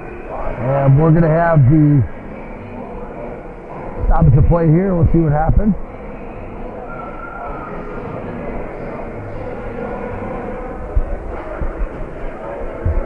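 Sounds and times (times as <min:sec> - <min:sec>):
crowd murmur: 0:00.0 - 0:13.0.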